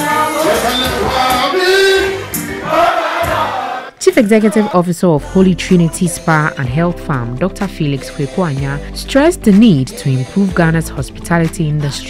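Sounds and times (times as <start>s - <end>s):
person singing into microphone: 0.0s - 2.4s, 4.2s - 8.9s, 9.6s - 12.0s
live afro-pop music: 0.0s - 12.0s.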